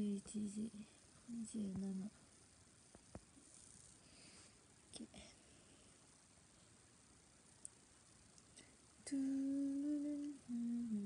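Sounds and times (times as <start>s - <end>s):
woman humming: 0.0s - 2.1s, 8.6s - 11.0s.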